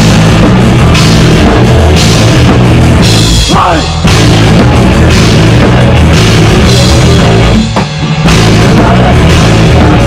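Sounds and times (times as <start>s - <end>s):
distorted electric guitar: 0.0s - 10.0s
drum kit with crashing cymbals: 0.0s - 10.0s.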